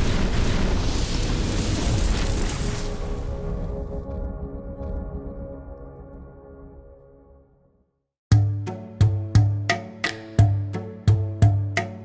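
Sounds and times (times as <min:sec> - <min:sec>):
rumbling explosion effect: 0:00.0 - 0:05.4
music: 0:03.1 - 0:12.0.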